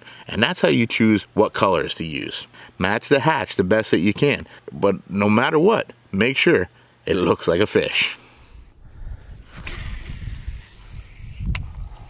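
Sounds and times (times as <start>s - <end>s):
wind rumble on microphone: 8.5s - 12.0s
fishing reel whirring: 9.5s - 11.5s.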